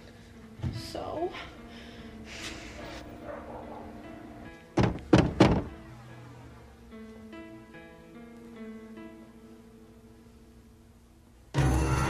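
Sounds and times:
soft background music: 0.0 - 12.0
heavy thuds: 4.8 - 5.8.

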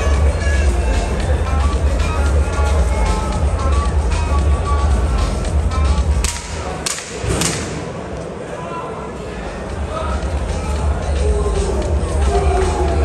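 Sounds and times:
music with heavy bass beat: 0.0 - 6.6, 10.1 - 13.0
sharp cracks: 6.2 - 8.3.

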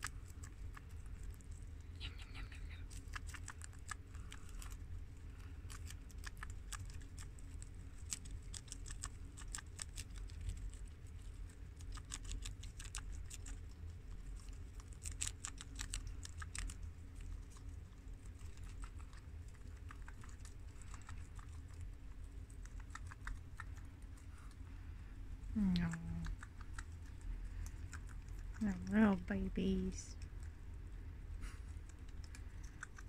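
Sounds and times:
guinea pigs chewing lettuce: 0.0 - 33.0.

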